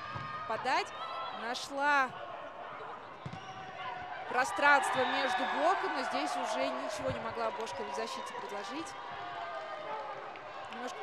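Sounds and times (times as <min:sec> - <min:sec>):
crowd noise indoors: 0:00.0 - 0:11.0.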